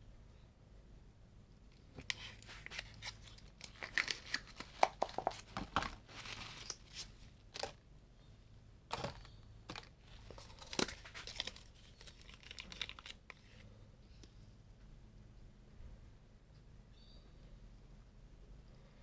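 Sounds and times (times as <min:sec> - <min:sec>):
rustling and crinkling: 0:01.9 - 0:07.8, 0:08.9 - 0:13.8.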